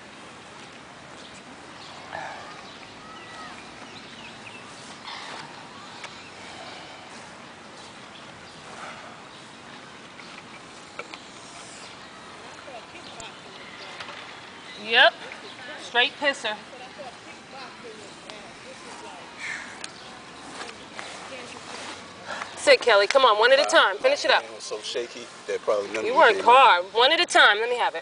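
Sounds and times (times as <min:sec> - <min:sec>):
outdoor background hiss: 0:00.0 - 0:28.0
distant voices calling out: 0:01.4 - 0:24.6.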